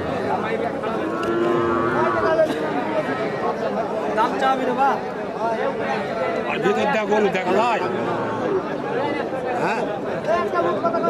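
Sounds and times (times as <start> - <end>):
crowd chatter: 0.0 - 11.0
calf mooing: 1.1 - 2.3.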